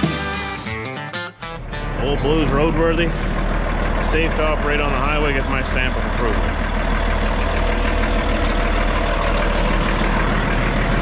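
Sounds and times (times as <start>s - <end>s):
truck diesel engine idling: 1.3s - 11.0s.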